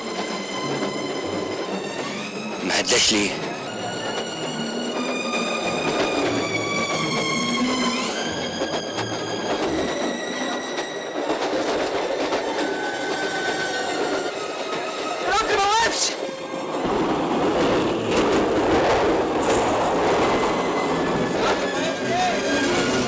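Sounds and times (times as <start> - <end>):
train rumble with wheel clatter: 0.0 - 23.0.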